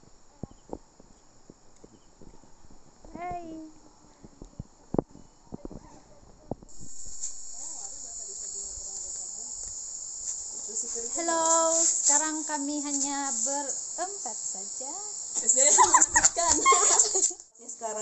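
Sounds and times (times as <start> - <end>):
insects chirring: 0.0 - 18.0.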